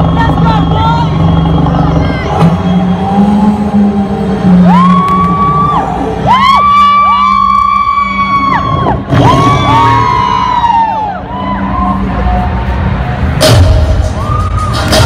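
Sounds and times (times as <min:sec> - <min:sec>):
low drone: 0:00.0 - 0:15.0.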